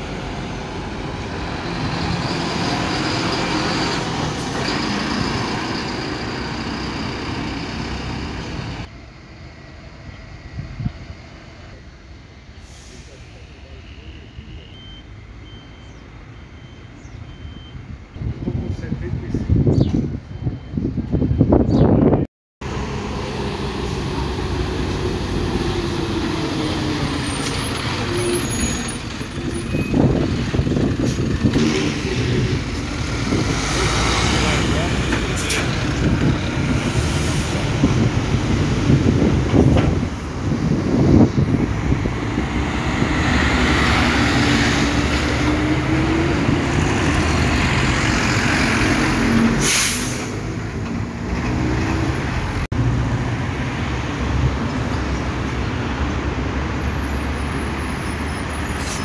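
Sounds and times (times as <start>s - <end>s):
buses and cars driving past: 0.0s - 59.0s
air-brake hisses: 49.6s - 50.4s.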